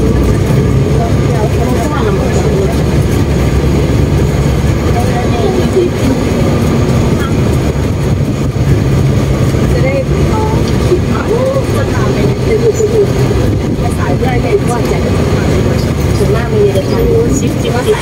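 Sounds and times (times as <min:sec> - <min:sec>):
people talking: 0:00.0 - 0:03.6, 0:04.7 - 0:08.2, 0:09.6 - 0:18.0
vehicle engine and road noise: 0:00.0 - 0:18.0.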